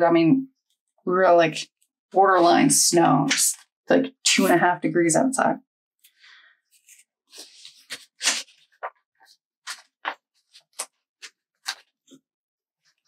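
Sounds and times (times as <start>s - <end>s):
sticker sheets rustling and crinkling: 6.8s - 12.2s.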